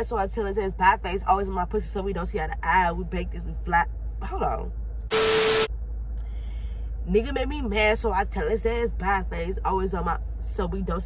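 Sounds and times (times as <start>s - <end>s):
car air low rumble: 0.0s - 11.0s
steady hum: 0.0s - 11.0s
static hiss burst: 5.1s - 5.7s.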